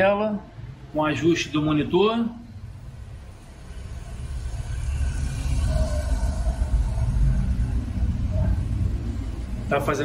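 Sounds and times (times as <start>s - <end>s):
low rumble: 2.5s - 9.8s.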